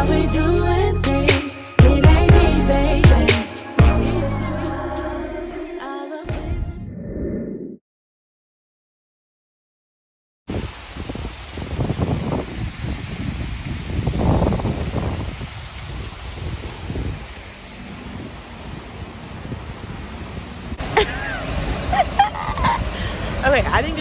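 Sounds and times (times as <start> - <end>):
wind buffeting microphone: 10.5 - 20.8, 21.5 - 24.0
street noise hiss: 10.5 - 24.0.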